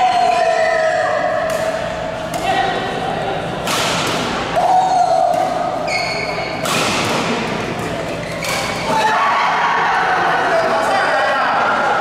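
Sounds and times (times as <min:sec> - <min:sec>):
rackets hitting shuttlecock: 0:01.4 - 0:02.8, 0:03.5 - 0:09.0.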